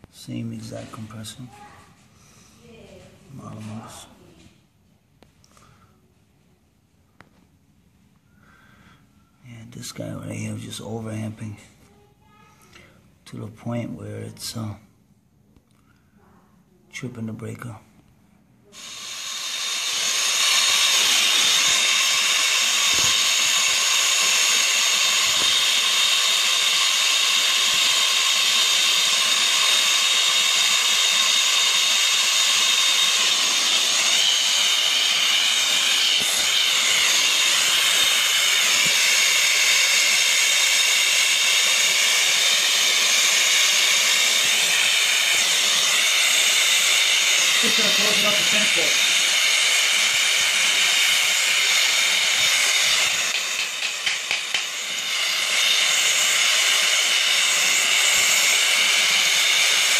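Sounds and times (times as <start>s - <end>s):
torch flame hissing: 18.6s - 59.9s.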